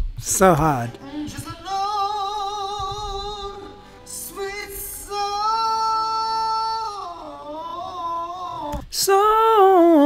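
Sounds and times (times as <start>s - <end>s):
person singing high note: 0.5s - 10.0s.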